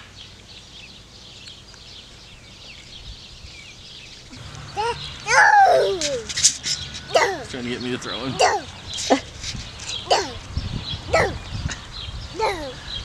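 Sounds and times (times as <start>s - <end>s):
birds chirping: 0.0s - 13.0s
high squealing voices: 4.3s - 11.5s, 12.4s - 12.8s.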